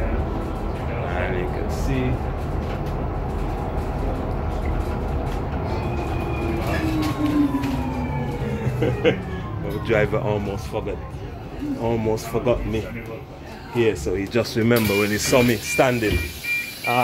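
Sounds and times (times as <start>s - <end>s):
bus engine rumble: 0.0s - 16.9s.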